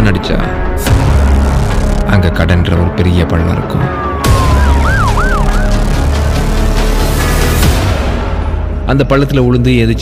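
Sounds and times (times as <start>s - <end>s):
siren wailing: 3.9s - 6.1s
heavy low bass music: 4.0s - 8.7s.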